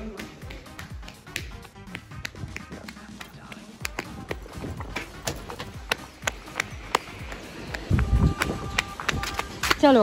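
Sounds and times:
footsteps on pavement: 0.0s - 10.0s
music playing: 0.0s - 10.0s.

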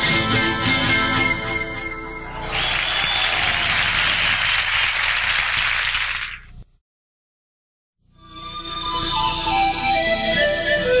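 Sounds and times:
audience applauding: 2.1s - 6.6s.

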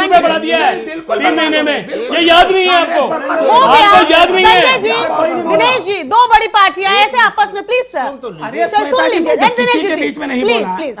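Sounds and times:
men arguing: 0.0s - 11.0s.

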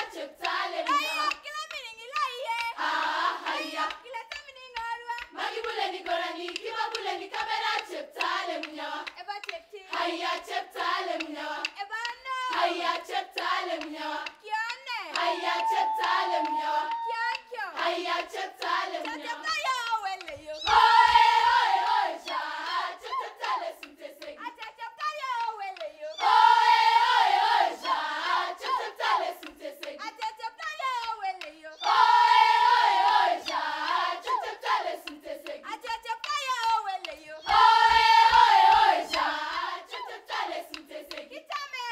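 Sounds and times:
girls' choir singing unaccompanied: 0.0s - 1.5s, 2.3s - 41.9s.

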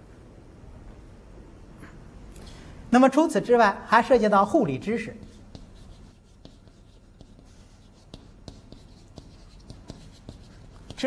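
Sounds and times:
chalk scratching on blackboard: 5.0s - 11.0s.

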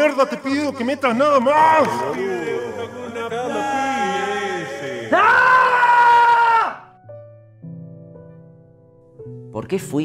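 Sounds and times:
man screaming: 1.6s - 6.9s.

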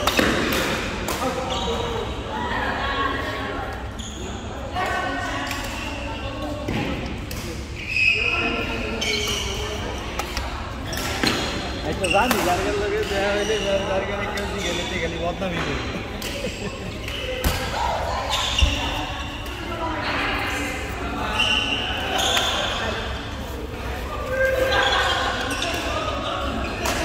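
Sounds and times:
racket hitting shuttlecock: 0.0s - 1.4s
people talking in echoing hall: 0.0s - 27.0s
shoes squeaking on floor: 3.8s - 4.5s, 7.8s - 10.2s, 10.8s - 15.8s, 18.2s - 19.8s, 21.0s - 26.8s.

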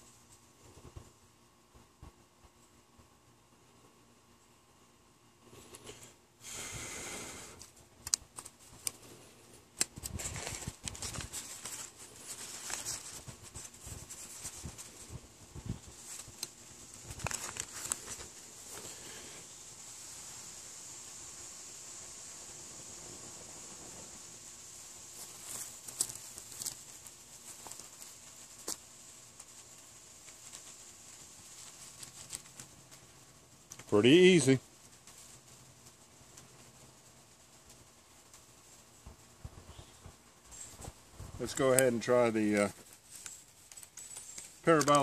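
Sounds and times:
faint steady hiss: 0.0s - 45.0s
sharp clicks: 7.6s - 9.0s
plastic wrapper crinkling: 9.7s - 19.1s, 25.2s - 28.8s, 30.2s - 33.0s, 40.5s - 45.0s.

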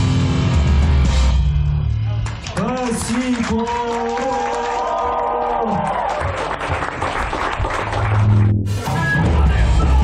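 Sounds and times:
live punk band playing: 0.0s - 1.4s, 8.7s - 10.0s.

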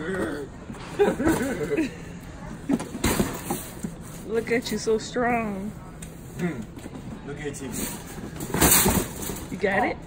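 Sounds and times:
woman speaking: 4.2s - 5.8s, 9.5s - 10.0s.

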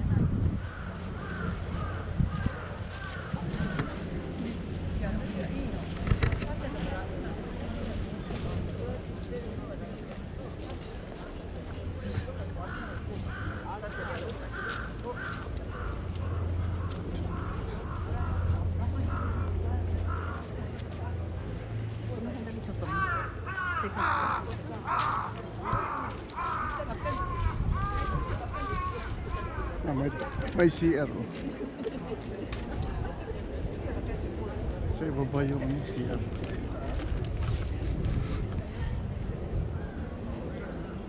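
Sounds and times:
wind rumbling on microphone: 0.0s - 13.7s, 25.6s - 41.0s
faint voices talking: 0.0s - 41.0s
crow cawing: 0.6s - 3.9s, 12.6s - 19.5s, 20.1s - 20.4s, 22.8s - 29.8s.

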